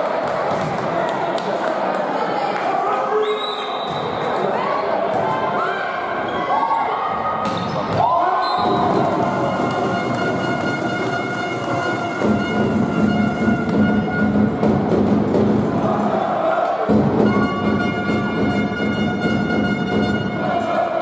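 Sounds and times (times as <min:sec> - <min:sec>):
music: 0:08.6 - 0:15.8, 0:16.9 - 0:21.0.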